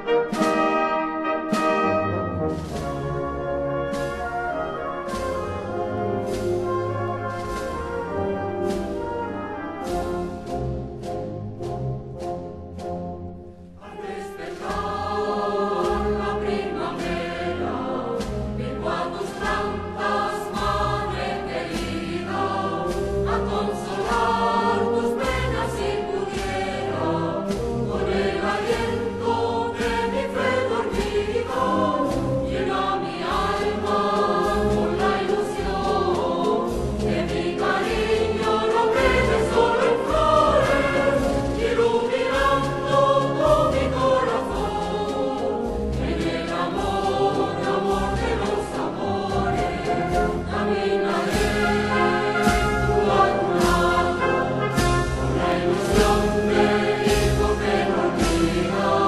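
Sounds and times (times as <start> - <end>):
wind band playing a march: 0.0 - 59.0
bass drum beat: 14.7 - 59.0.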